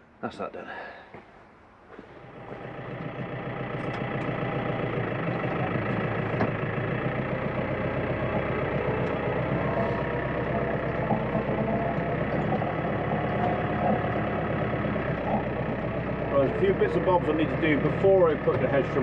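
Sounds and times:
tractor diesel engine idling: 2.0s - 19.0s.

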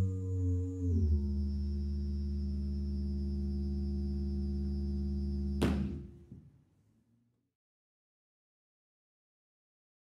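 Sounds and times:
synthesizer drone: 0.0s - 5.6s.

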